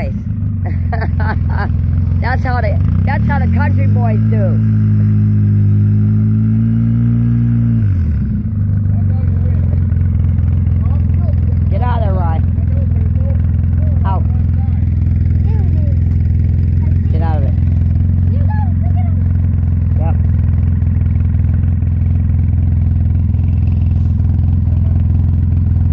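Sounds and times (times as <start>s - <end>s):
off-road vehicle engine idling: 0.0s - 25.9s.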